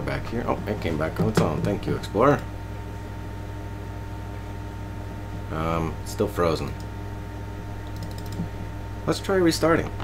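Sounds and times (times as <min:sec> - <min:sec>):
steady low hum: 0:00.0 - 0:10.0
computer input clicks: 0:07.8 - 0:08.4.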